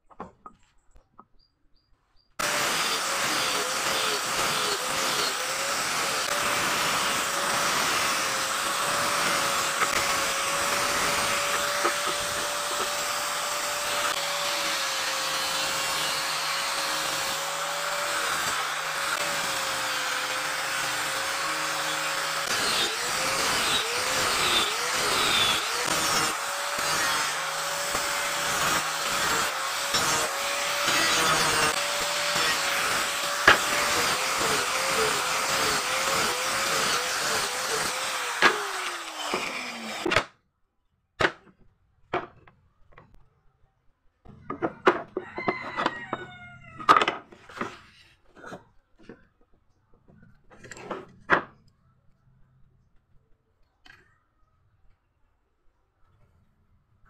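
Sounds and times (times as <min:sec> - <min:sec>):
angle grinder sanding wood: 0:02.4 - 0:40.1.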